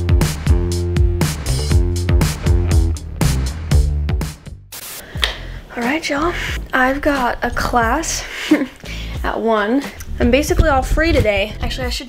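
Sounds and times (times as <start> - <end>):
music with snapping beat: 0.0 - 6.8, 8.5 - 12.0
short hiss: 4.7 - 5.5
woman talking: 5.7 - 8.3, 9.2 - 12.0.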